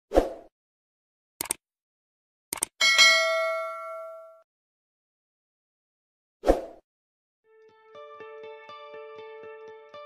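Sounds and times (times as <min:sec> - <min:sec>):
mouse clicks: 0:01.4 - 0:01.6
notification bell ding: 0:02.8 - 0:04.4.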